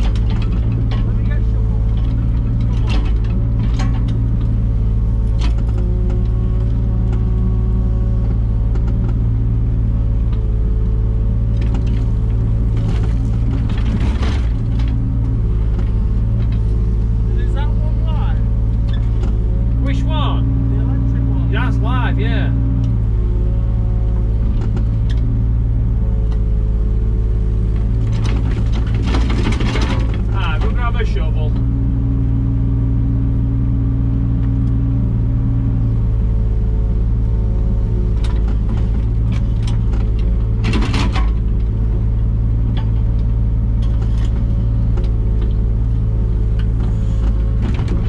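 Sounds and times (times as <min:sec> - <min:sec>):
diesel engine running: 0:00.0 - 0:48.0
hydraulics humming: 0:00.0 - 0:48.0.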